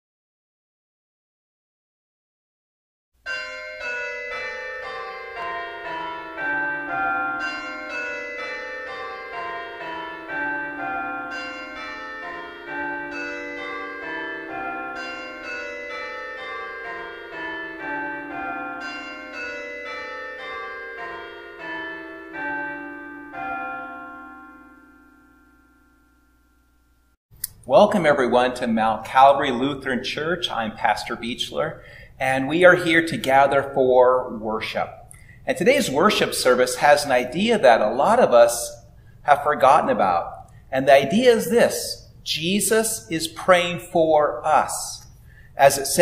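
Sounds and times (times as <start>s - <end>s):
church bells ringing a peal: 3.3s - 26.5s, 28.0s - 46.0s.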